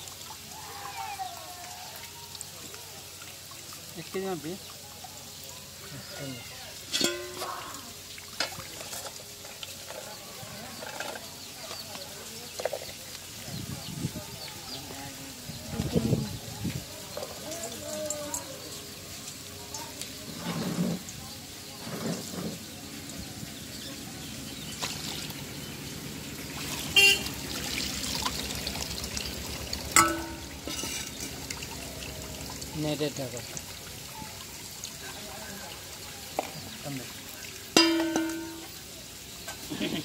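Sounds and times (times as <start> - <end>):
water sloshing and trickling: 0.0 - 40.0
loud horn toots: 26.9 - 27.4.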